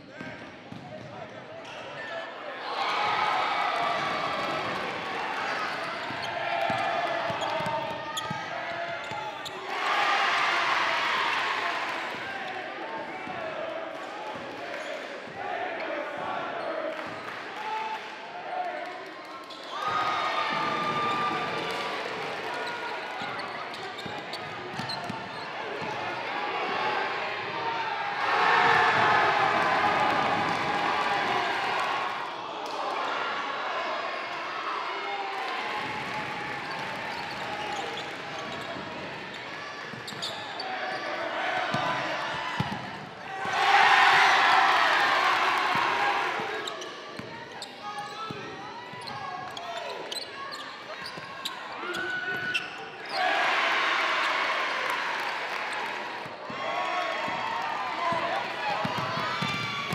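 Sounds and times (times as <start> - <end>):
voices of players and spectators: 0.0 - 59.9.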